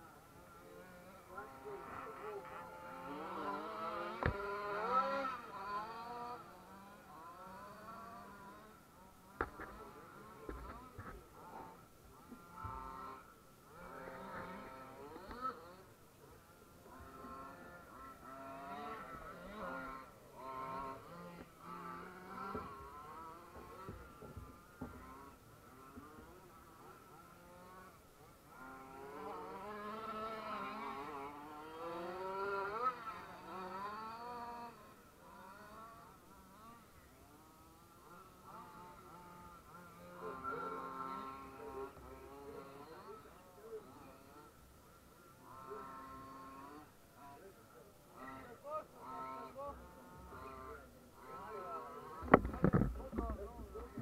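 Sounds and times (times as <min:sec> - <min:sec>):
radio-controlled cars buzzing: 0:00.0 - 0:54.0.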